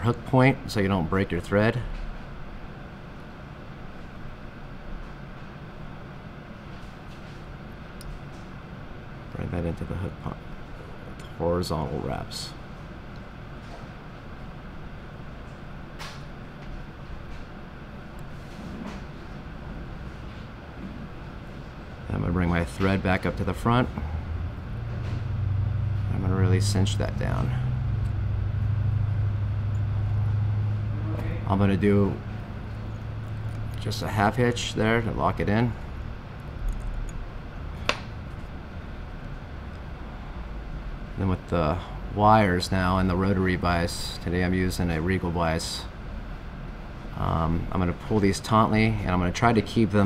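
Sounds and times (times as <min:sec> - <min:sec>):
low room hum: 0:00.0 - 0:50.0
low background rumble: 0:19.0 - 0:50.0.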